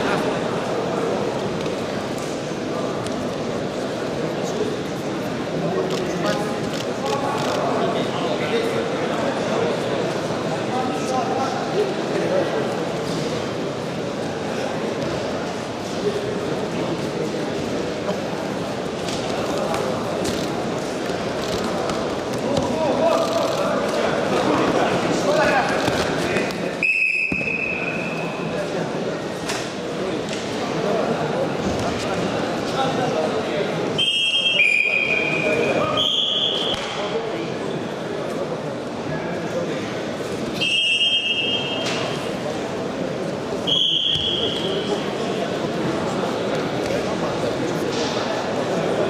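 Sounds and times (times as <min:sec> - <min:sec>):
crowd chattering and shouting: 0:00.0 - 0:49.0
referee's whistle blasts: 0:26.8 - 0:28.3, 0:34.0 - 0:36.8, 0:40.6 - 0:42.0, 0:43.6 - 0:44.9.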